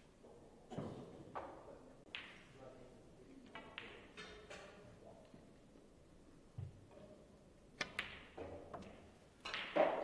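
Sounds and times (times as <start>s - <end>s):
snooker balls clicking: 7.8s - 10.0s.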